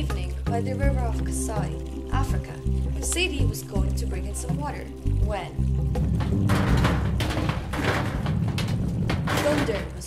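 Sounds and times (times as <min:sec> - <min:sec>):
thunder rumbling: 0:06.0 - 0:10.0.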